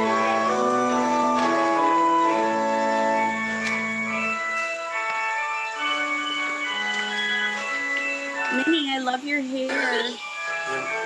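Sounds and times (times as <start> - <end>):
organ playing slow chords: 0.0 - 11.0.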